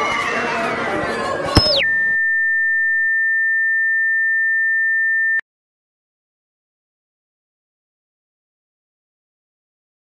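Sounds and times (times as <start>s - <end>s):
high-pitched electronic tone: 1.6s - 5.4s.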